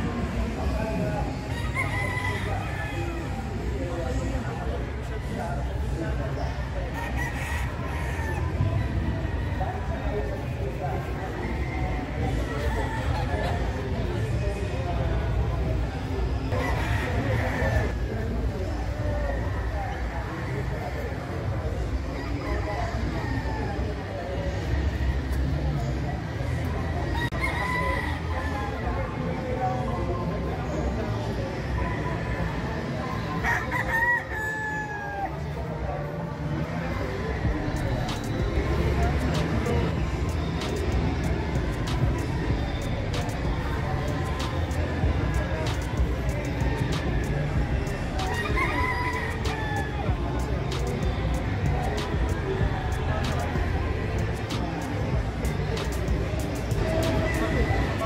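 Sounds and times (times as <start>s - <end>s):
low background noise: 0.0s - 58.0s
rooster crowing: 1.5s - 3.2s, 48.3s - 49.9s.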